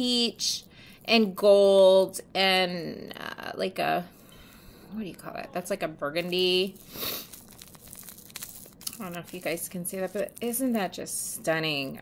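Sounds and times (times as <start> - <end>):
plastic bag crinkling: 6.2 - 11.4.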